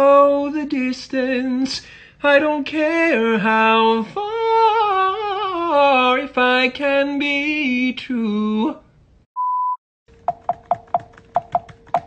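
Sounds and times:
short electronic beep: 9.4s - 9.8s.

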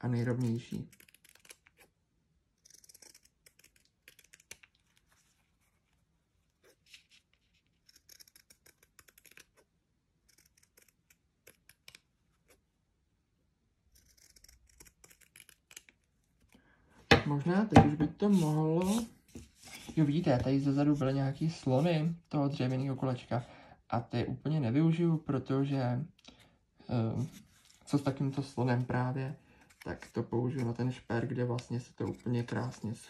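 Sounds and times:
scissors snipping fabric: 2.5s - 4.8s, 7.8s - 12.6s, 13.9s - 16.1s.

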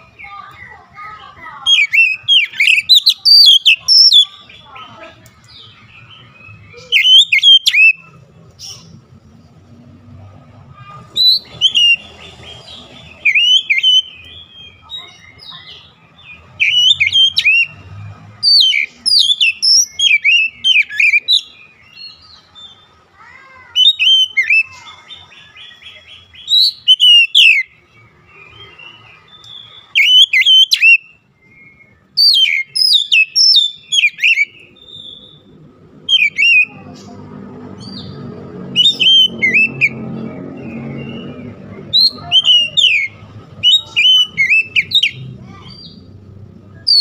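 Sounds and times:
bird singing whistled phrases: 1.6s - 4.8s, 5.5s - 8.2s, 11.1s - 17.8s, 18.4s - 22.3s, 23.7s - 36.9s, 38.7s - 40.0s, 40.6s - 46.1s, 46.8s - 47.0s.

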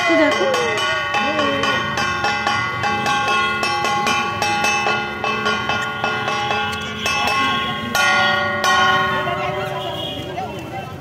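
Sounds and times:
temple bells ringing rapidly: 0.0s - 11.0s.

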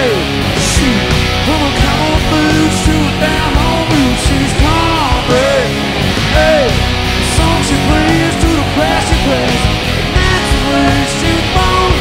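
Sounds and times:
drum and bass beat: 0.0s - 12.0s
electric guitar bending notes: 0.0s - 12.0s.

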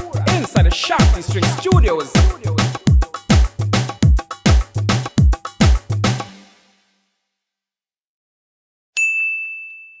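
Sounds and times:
bright metallic ding ringing: 9.0s - 10.0s.

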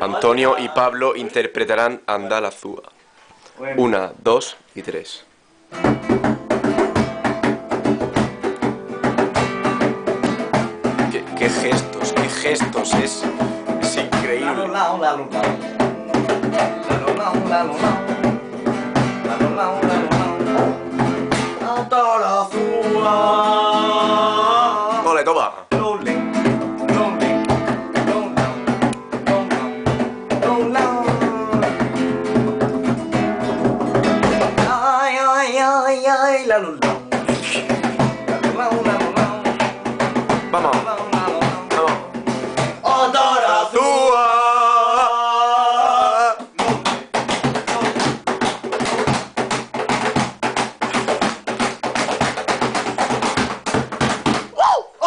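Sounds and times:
acoustic guitar strumming: 5.4s - 54.5s
cajon struck by hand: 5.7s - 35.6s, 36.6s - 43.5s, 46.0s - 54.7s.

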